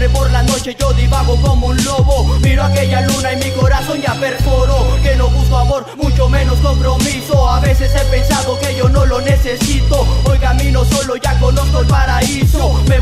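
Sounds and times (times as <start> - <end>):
deep sustained bass line: 0.0 - 13.0
rapping over a beat: 0.0 - 13.0.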